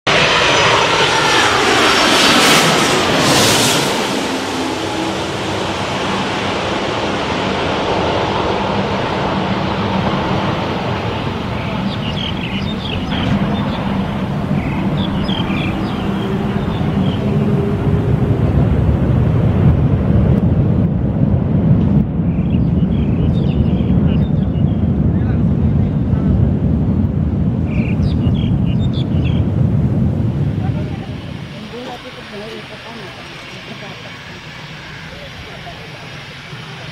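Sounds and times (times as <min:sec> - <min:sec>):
jet roar at takeoff: 0:00.0 - 0:36.9
jet airliner passing overhead: 0:00.1 - 0:36.9.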